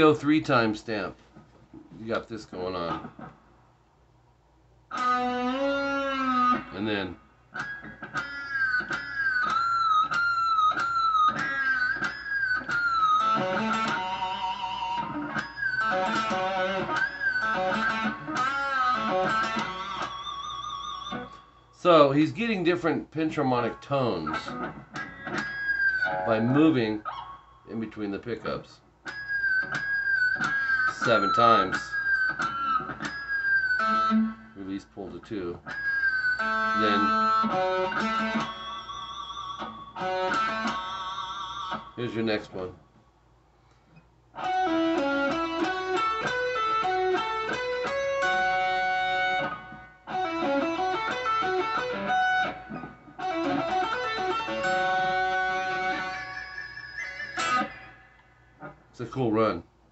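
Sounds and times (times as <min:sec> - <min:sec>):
electric guitar harmonic note: 0:04.9 - 0:21.5, 0:24.3 - 0:26.7, 0:35.6 - 0:41.9, 0:44.4 - 0:58.8
electric guitar fast lead run: 0:44.4 - 0:57.9.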